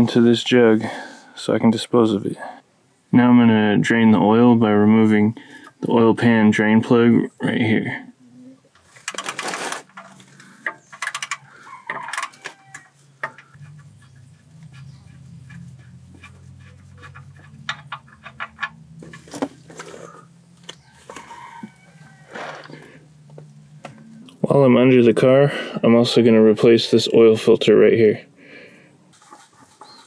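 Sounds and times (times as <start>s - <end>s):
wrench clicking: 9.1s - 13.6s
engine oil draining: 13.3s - 20.9s.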